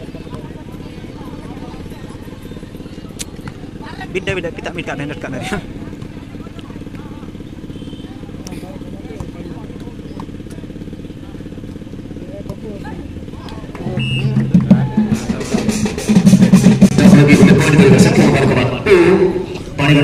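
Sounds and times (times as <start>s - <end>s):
background murmur: 0.0s - 20.0s
amplified voice over loudspeaker: 16.9s - 20.0s.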